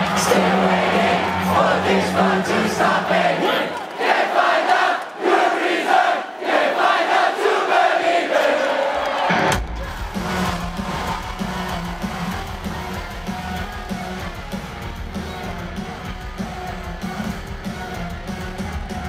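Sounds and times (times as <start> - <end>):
rock band with loud electric guitars: 0.0 - 3.8, 9.2 - 19.0
crowd singing unaccompanied: 0.0 - 14.4.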